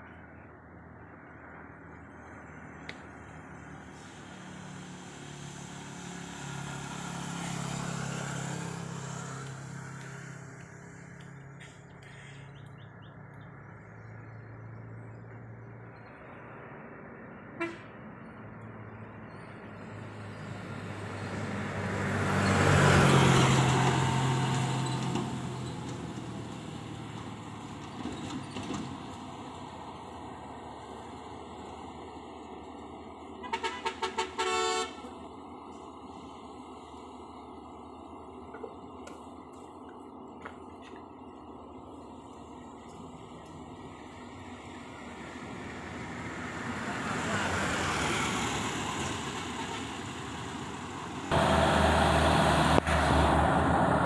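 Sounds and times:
truck diesel engines climbing: 0.0s - 54.0s
vehicle passing close by: 2.2s - 11.9s, 18.6s - 32.5s, 43.7s - 54.0s.

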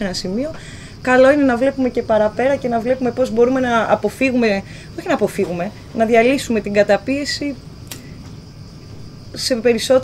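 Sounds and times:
woman speaking: 0.0s - 7.6s, 9.3s - 10.0s
crickets chirring: 0.0s - 10.0s.

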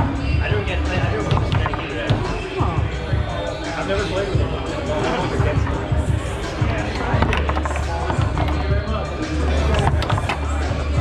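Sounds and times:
background music with bass: 0.0s - 11.0s
foosball ball clacking: 1.2s - 2.3s, 6.6s - 11.0s.

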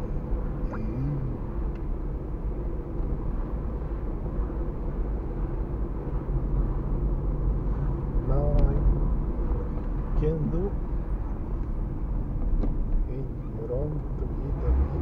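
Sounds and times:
car engine and tyres rumbling: 0.0s - 15.0s
person speaking: 0.7s - 1.4s.

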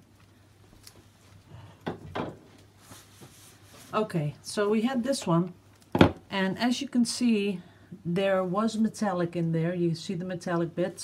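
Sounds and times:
soft handling noises: 0.0s - 4.4s.

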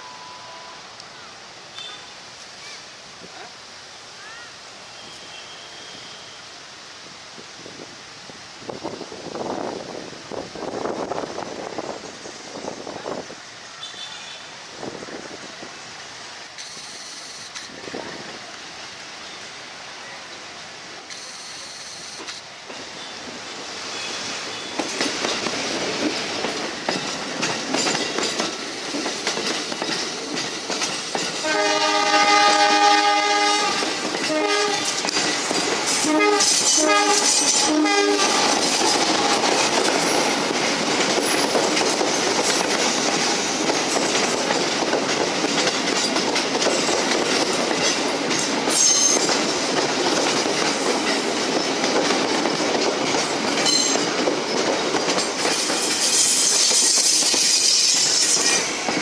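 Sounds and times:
train wheel clatter: 16.6s - 18.0s, 21.1s - 59.0s
locomotive horn chord: 31.4s - 34.9s, 36.0s - 38.4s.

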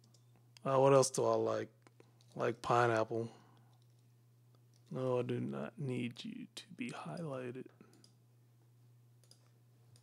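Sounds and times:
faint computer clicks: 0.0s - 0.7s, 3.5s - 5.0s, 6.8s - 8.2s, 9.2s - 10.0s
low steady hum: 0.0s - 10.0s.

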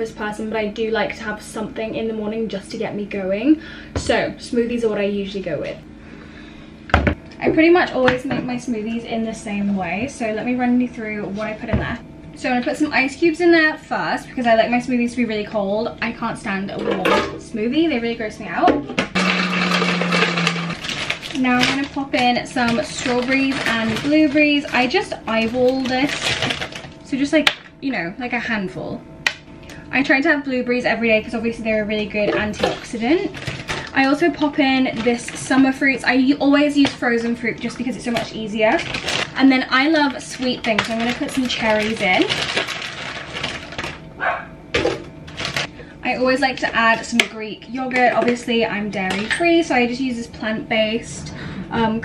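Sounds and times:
blender grinding ice: 19.1s - 27.2s, 32.4s - 36.0s, 37.6s - 44.0s, 44.8s - 45.7s.

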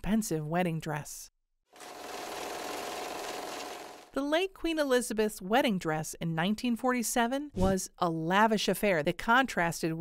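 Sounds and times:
fast mechanical clatter: 1.8s - 4.1s.

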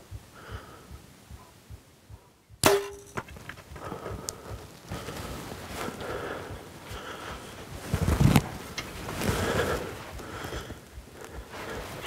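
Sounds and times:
quieter smack: 2.6s - 3.5s.

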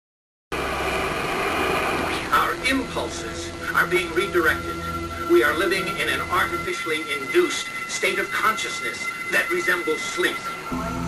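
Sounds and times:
dense hissing drone: 0.5s - 11.0s
low hum: 0.5s - 11.0s.

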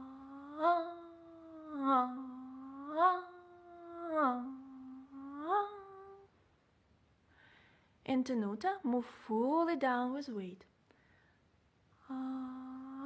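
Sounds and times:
woman humming staccato notes: 0.0s - 6.3s, 12.1s - 13.0s.

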